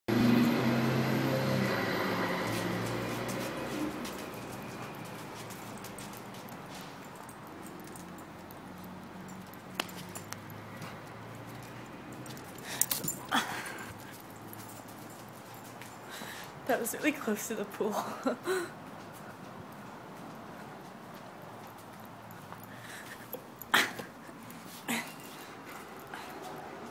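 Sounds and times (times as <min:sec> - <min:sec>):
dog making play sounds: 0:02.5 - 0:15.9.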